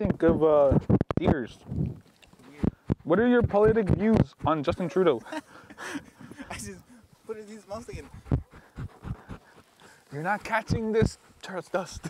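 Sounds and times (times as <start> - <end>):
dog panting: 7.7 - 11.4.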